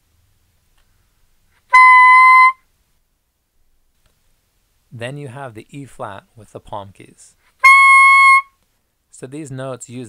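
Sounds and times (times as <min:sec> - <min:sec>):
soprano saxophone held note: 0:01.7 - 0:02.6.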